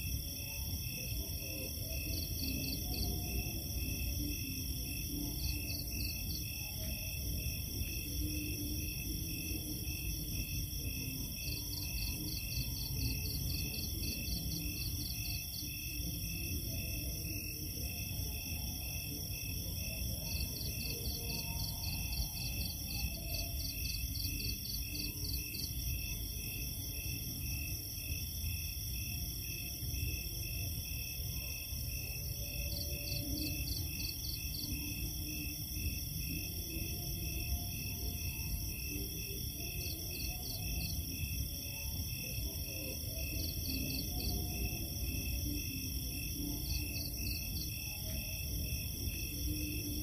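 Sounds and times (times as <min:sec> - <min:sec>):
chorus of night insects: 0:00.0 - 0:50.0.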